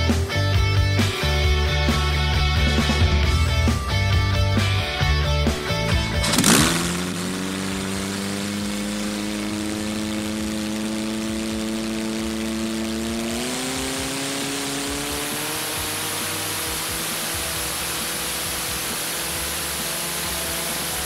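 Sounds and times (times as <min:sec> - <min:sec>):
rock guitar music: 0:00.0 - 0:21.0
racing boat engine: 0:01.8 - 0:21.0.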